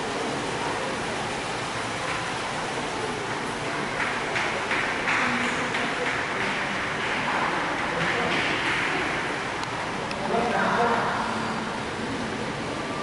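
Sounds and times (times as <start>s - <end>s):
indoor hall background noise: 0.0s - 13.0s.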